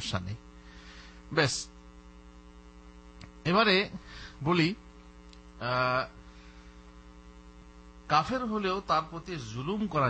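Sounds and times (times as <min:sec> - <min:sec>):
man speaking: 0:00.0 - 0:00.4, 0:01.3 - 0:01.7, 0:03.4 - 0:04.8, 0:05.6 - 0:06.2, 0:08.1 - 0:10.0
electrical mains hum: 0:00.0 - 0:10.0.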